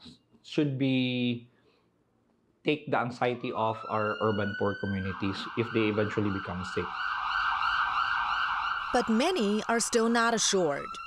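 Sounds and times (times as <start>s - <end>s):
emergency vehicle sirens: 3.2s - 11.0s.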